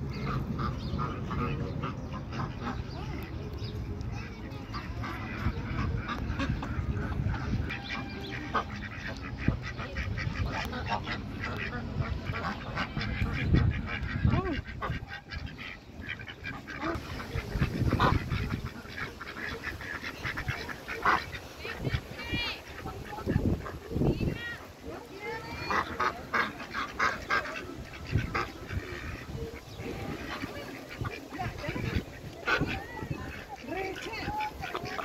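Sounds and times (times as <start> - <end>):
ducks quacking: 0.0 - 35.0.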